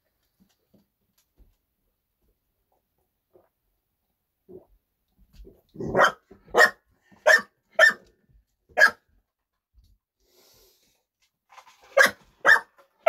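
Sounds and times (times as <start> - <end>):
dog barking: 5.8 - 8.1, 8.7 - 9.1, 11.9 - 12.8.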